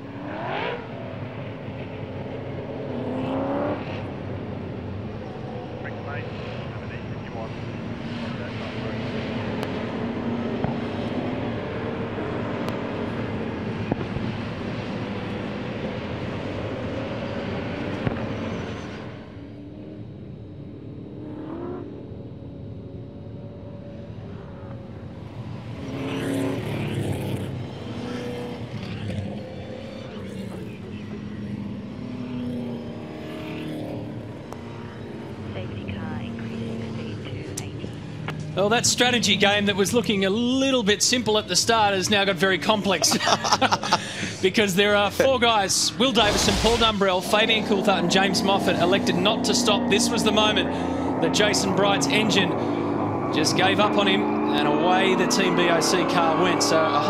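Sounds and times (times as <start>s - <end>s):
racing car engines: 0.0s - 57.0s.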